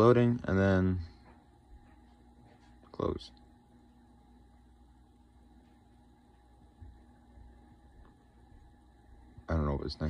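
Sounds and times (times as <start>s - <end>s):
desktop computer hum: 0.0s - 10.0s.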